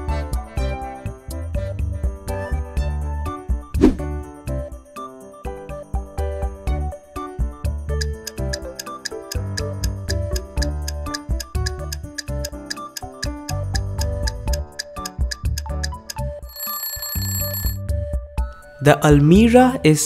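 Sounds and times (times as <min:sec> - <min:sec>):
upbeat background music: 0:00.0 - 0:20.0
clock ticking: 0:08.0 - 0:16.2
alarm ringing: 0:16.4 - 0:17.8.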